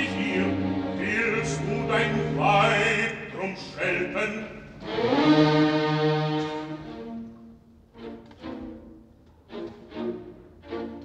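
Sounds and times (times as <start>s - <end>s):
orchestra brass chords: 4.2s - 7.3s.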